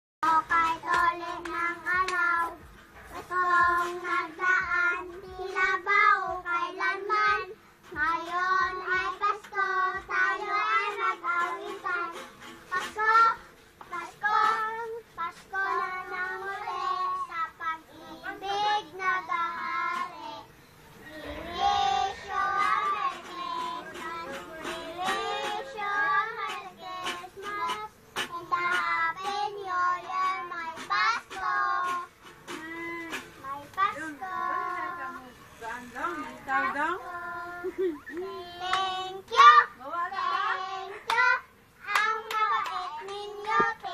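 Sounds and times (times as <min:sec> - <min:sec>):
young child singing: 0:00.2 - 0:35.2, 0:37.0 - 0:43.9.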